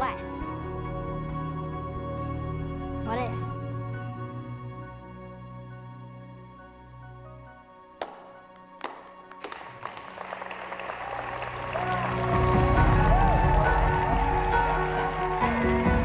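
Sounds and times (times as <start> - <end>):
music: 0.0 - 16.0
sharp single claps: 8.0 - 10.6
crowd applause and cheering: 8.0 - 16.0.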